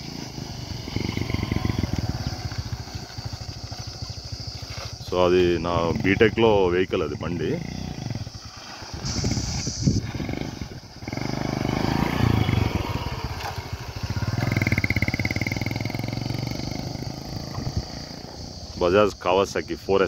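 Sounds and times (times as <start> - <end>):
motorcycle engine revving: 0.0 - 18.8.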